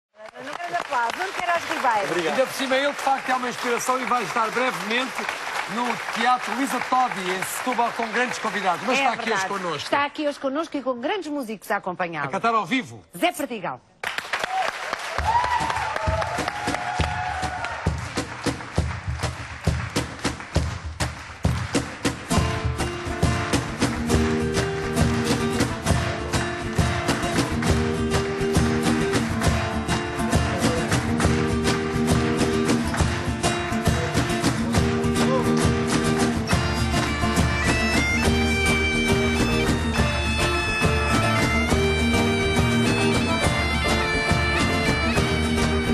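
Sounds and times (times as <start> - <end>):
audience applauding: 0.1 - 10.5, 14.0 - 45.9
percussion: 0.2 - 45.9
drum beat: 15.2 - 45.9
folk band playing: 17.9 - 45.9
strummed acoustic guitars: 21.7 - 45.9
high melodic line: 36.3 - 45.9.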